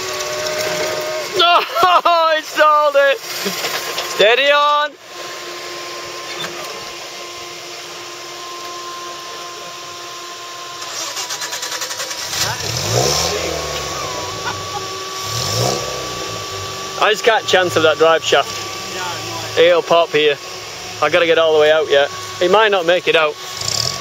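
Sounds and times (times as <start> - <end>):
off-road engine labouring: 0.0 - 24.0
steady whine: 0.0 - 24.0.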